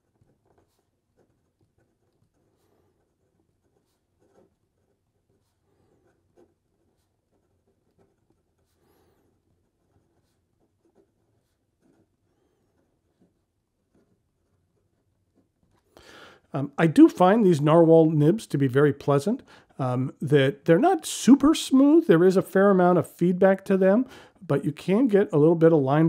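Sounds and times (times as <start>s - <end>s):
fountain pen scratching paper: 0.0s - 16.0s.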